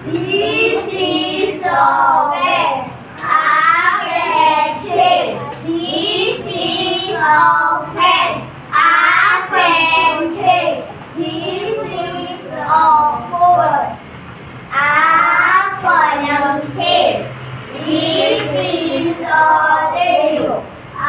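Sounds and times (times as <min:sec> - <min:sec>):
children chanting a lesson: 0:00.0 - 0:14.0, 0:14.7 - 0:21.0.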